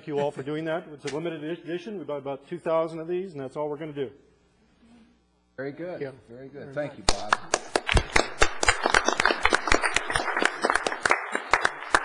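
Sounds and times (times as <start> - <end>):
small group applauding: 7.1 - 12.0.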